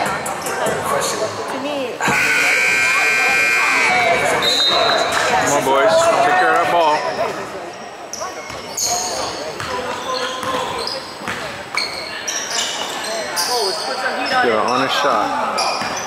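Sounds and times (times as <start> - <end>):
long shrill signal tone: 2.1 - 4.2.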